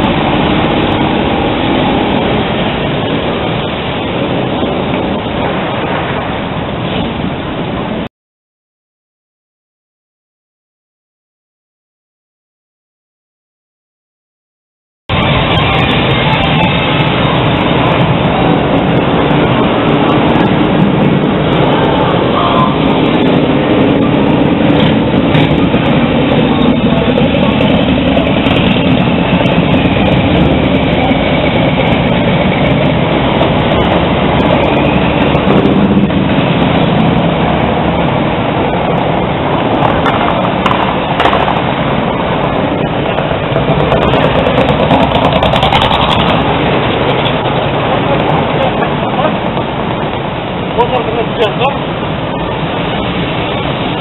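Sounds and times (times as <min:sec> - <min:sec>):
vehicle traffic and engines: 0:00.0 - 0:08.1, 0:15.1 - 0:54.0
voices: 0:15.1 - 0:36.2, 0:45.9 - 0:51.9.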